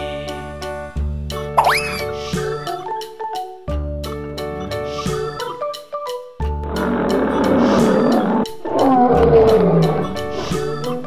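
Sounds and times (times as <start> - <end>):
background music: 0.0 - 11.0
lion roaring: 6.6 - 11.0.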